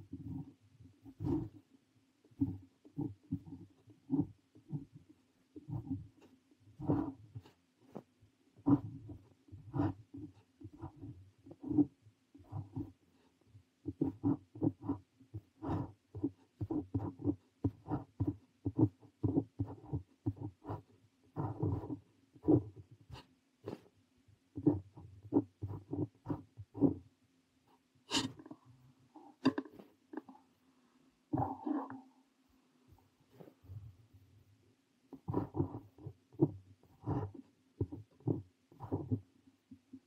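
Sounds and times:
pen nib scratching on paper: 0.0s - 1.7s, 2.3s - 23.9s, 24.5s - 27.0s, 27.7s - 28.5s, 35.1s - 39.2s
faint low hum: 0.0s - 40.0s.

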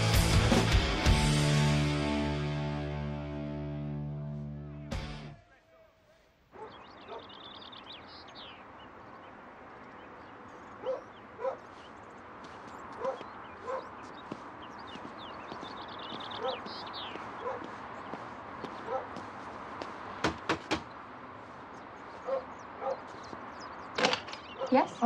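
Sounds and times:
outdoor background hiss: 5.3s - 12.7s
dog barking: 6.5s - 7.4s, 10.7s - 11.7s, 13.0s - 14.0s, 16.3s - 16.7s, 17.4s - 17.8s, 18.8s - 19.2s, 22.2s - 23.1s, 24.5s - 24.9s.

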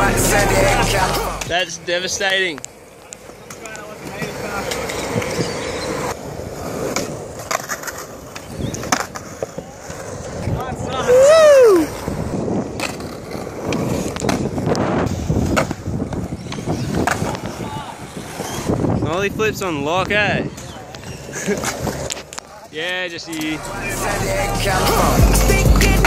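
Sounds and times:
skateboard wheels rolling on concrete: 0.0s - 26.0s
skateboards clacking on ground: 1.4s - 19.0s, 20.0s - 23.7s
person shouting: 11.0s - 12.0s.

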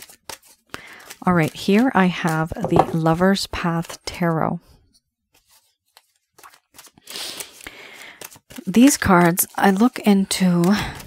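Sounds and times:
tarot cards clicking and rustling: 0.0s - 4.3s, 5.3s - 11.0s.

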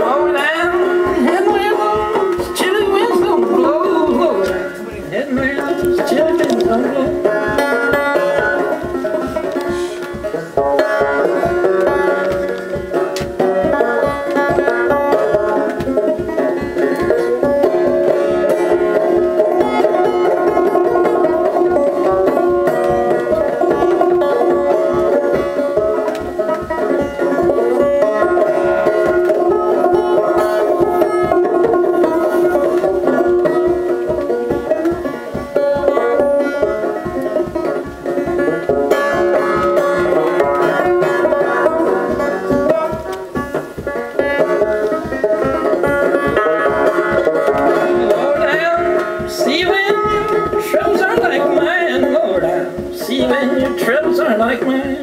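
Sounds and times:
banjo picking: 0.0s - 55.0s.

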